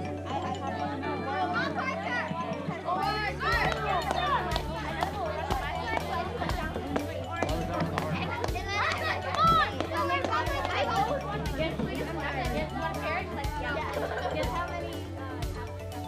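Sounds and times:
children calling and chattering: 0:00.0 - 0:16.0
music with steady bass line: 0:00.0 - 0:16.0.

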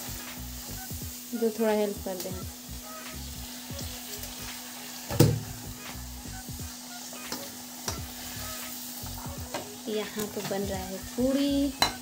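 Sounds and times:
food deep-frying in hot oil: 0:00.0 - 0:12.0.

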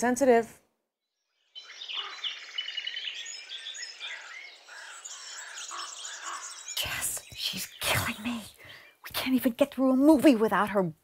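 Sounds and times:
birds chirping and singing: 0:01.2 - 0:09.5
faint outdoor hiss: 0:01.4 - 0:11.0.

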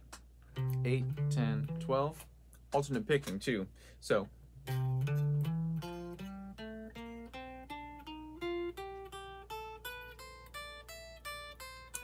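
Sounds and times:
clean electric guitar notes: 0:00.5 - 0:02.2, 0:04.6 - 0:12.0.

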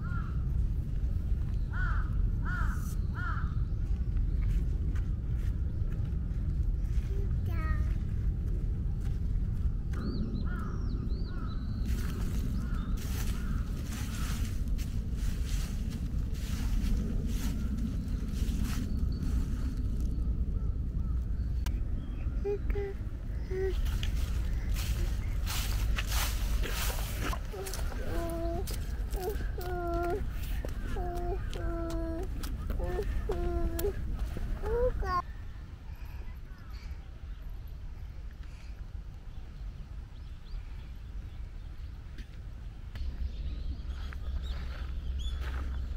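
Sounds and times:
low rumble: 0:00.0 - 0:45.9
toddler vocalizing: 0:27.3 - 0:30.3, 0:30.9 - 0:34.0, 0:34.6 - 0:35.2.

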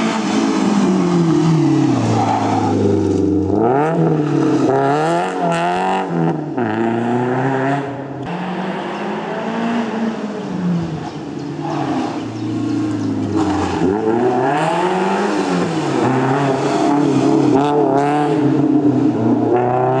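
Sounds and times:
rally car engine revving: 0:00.0 - 0:20.0.

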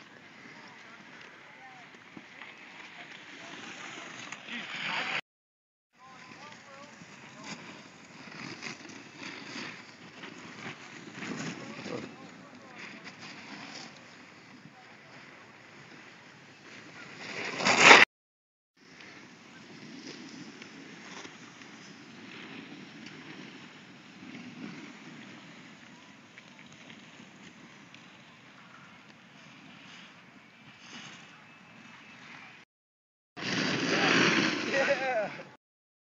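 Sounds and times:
snowboard scraping over snow: 0:00.0 - 0:05.2, 0:06.0 - 0:18.1, 0:18.8 - 0:32.3, 0:33.4 - 0:35.6.

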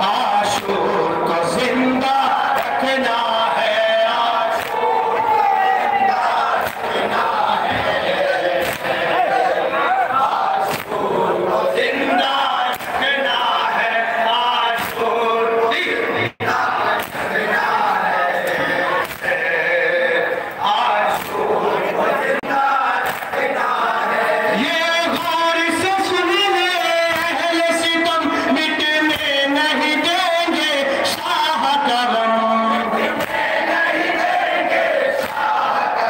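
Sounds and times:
crowd of men chanting: 0:00.0 - 0:36.0
collective chest slaps: 0:04.6 - 0:04.8, 0:06.6 - 0:06.9, 0:08.6 - 0:09.0, 0:10.7 - 0:11.0, 0:12.7 - 0:13.0, 0:17.0 - 0:17.3, 0:18.5 - 0:19.4, 0:21.1 - 0:21.4, 0:23.0 - 0:23.4, 0:35.2 - 0:35.5.

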